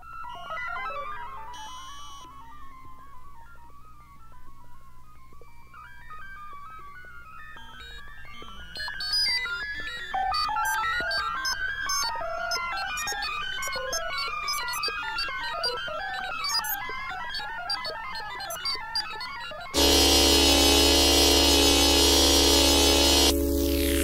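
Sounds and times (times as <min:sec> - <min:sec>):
electronic synthesizer music: 0:06.5 - 0:24.0.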